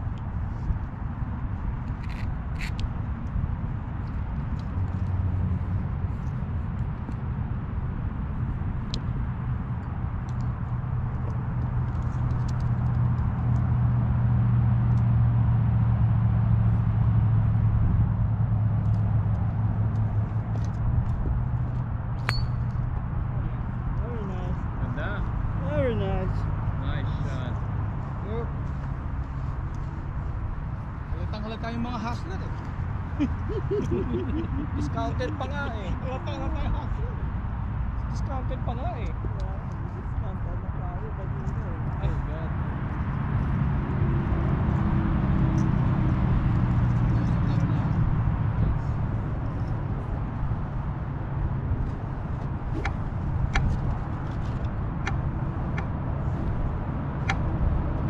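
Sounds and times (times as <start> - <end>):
low engine hum: 0.0 - 58.0
golf club striking ball: 22.2 - 22.8, 52.7 - 53.8.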